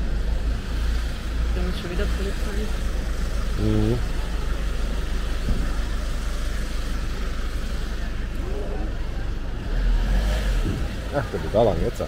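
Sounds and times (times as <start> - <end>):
low street rumble: 0.0 - 12.0
faint voices of passers-by: 1.2 - 12.0.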